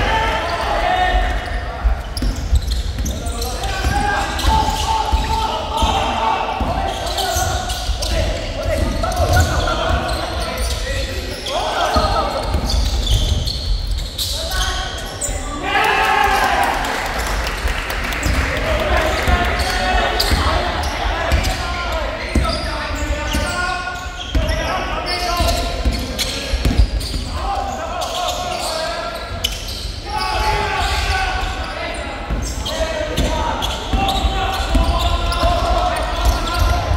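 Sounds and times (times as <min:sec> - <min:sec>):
echoing voices: 0:00.0 - 0:36.9.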